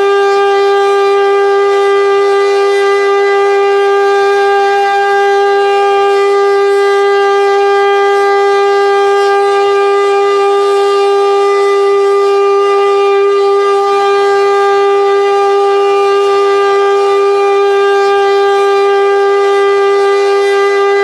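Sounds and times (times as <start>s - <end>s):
siren steady tone: 0.0s - 21.0s.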